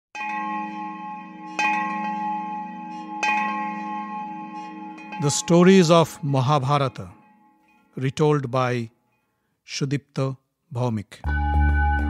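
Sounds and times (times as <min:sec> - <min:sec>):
bell ringing: 0:00.2 - 0:09.4.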